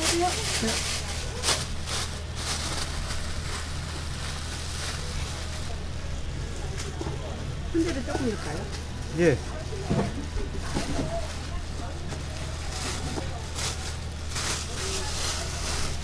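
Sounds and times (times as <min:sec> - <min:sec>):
faint background voices: 0:00.0 - 0:16.0
plastic bag rustling: 0:00.0 - 0:16.0.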